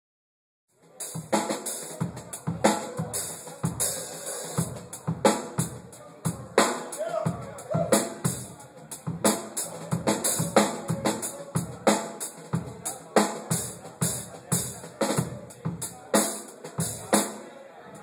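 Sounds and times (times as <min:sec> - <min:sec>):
drum kit playing: 0:00.9 - 0:17.4.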